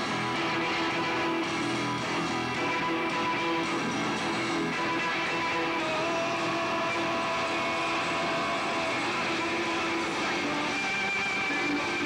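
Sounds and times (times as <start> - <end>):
held electric guitar notes: 0.0 - 12.0
live rock band playing: 0.0 - 12.0.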